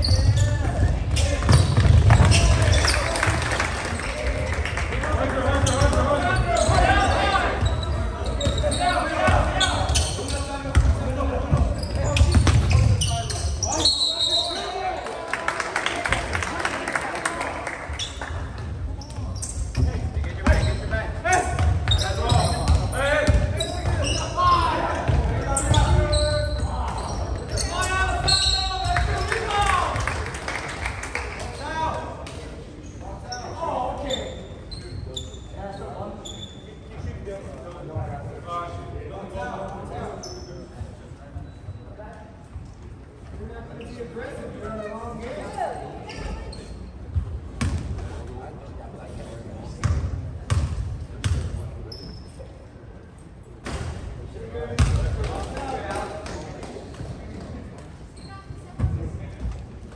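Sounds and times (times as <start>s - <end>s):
voices of players and spectators: 0.0s - 59.9s.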